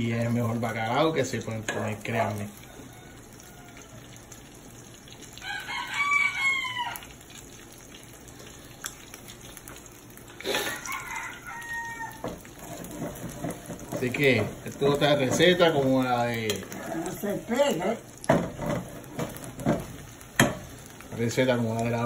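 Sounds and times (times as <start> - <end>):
rooster crowing: 2.6 - 4.2, 5.4 - 7.2, 10.5 - 12.5.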